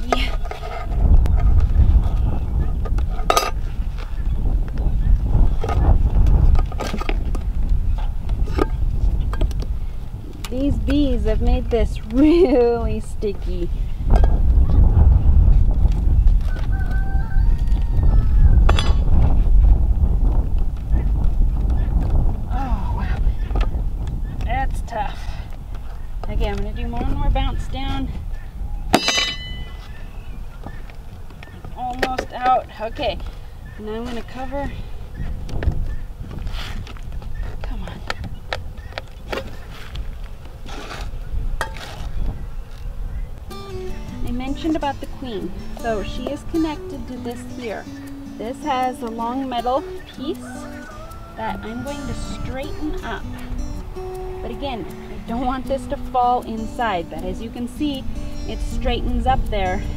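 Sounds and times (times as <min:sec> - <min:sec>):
wind rumble on microphone: 0:00.0 - 0:59.9
metal tool scraping tin can: 0:00.2 - 0:01.4
wooden box knock with metallic ring: 0:28.9 - 0:29.7.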